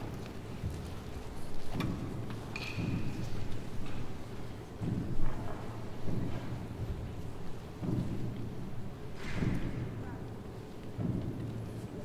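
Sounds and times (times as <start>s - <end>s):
audience shuffling and rustling: 0.0s - 2.5s.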